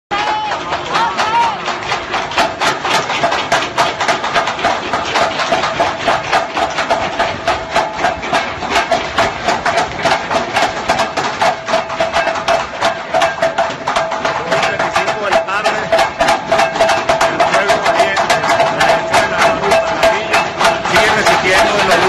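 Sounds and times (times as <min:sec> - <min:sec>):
rapid banging: 0:00.1 - 0:22.0.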